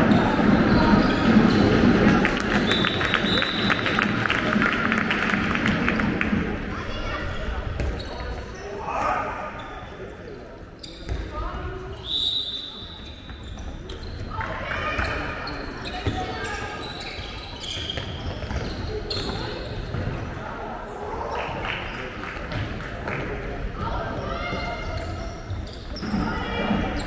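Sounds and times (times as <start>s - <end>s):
shoe squeaks: 0.2s - 1.9s, 10.8s - 19.8s, 24.3s - 27.0s.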